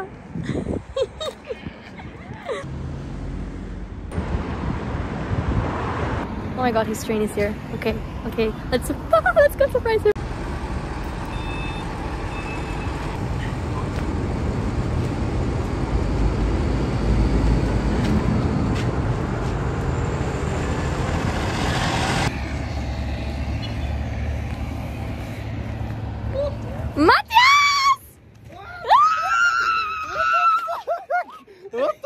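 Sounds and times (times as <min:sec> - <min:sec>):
train rumbling: 0:03.1 - 0:27.0
short beeps: 0:11.3 - 0:13.0.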